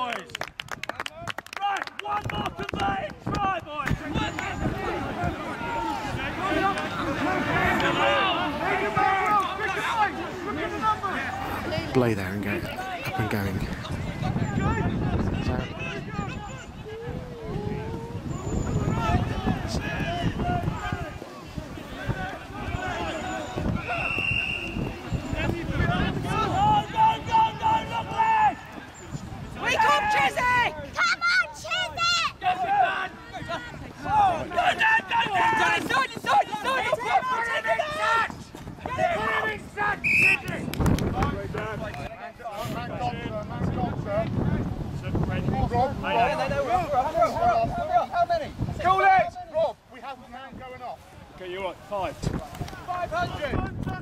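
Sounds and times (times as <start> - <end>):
long drawn-out shout: 1.6 - 11.6, 15.7 - 24.1, 29.5 - 40.5
people shouting: 2.0 - 11.8, 15.6 - 28.9, 29.5 - 40.6
voices talking: 2.0 - 54.0
referee's whistle blast: 22.8 - 25.4, 40.0 - 40.5.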